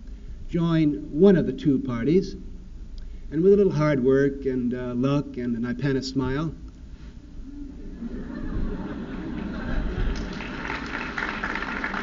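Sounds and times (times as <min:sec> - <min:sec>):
low recording hum: 0:00.0 - 0:12.0
audience laughing: 0:07.8 - 0:12.0.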